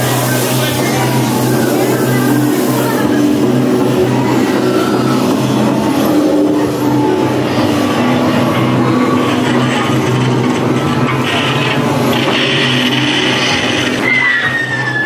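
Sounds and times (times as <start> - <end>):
indistinct voices: 0.0 - 15.0
low rumbling drone: 0.0 - 15.0.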